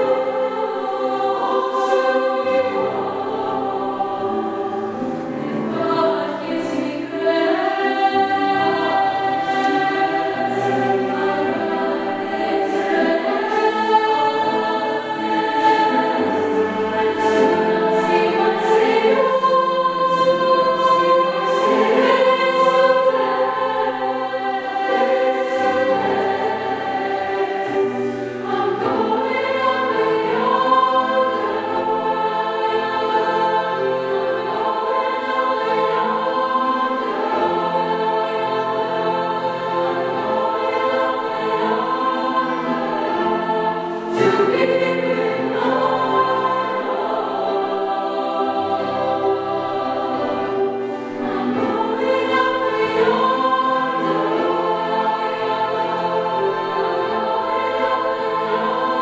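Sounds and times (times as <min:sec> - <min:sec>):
choir singing in harmony: 0:00.0 - 0:59.0
grand piano accompaniment: 0:00.0 - 0:59.0.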